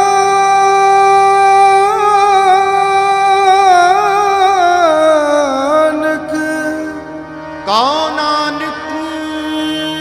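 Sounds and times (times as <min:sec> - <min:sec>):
harmonium holding a chord: 0:00.0 - 0:10.0
person singing: 0:00.0 - 0:10.0.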